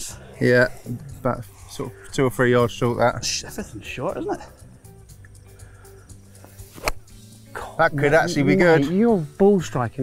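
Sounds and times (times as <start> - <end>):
quiet background music: 0.0 - 10.0
golf iron striking ball: 6.7 - 7.1.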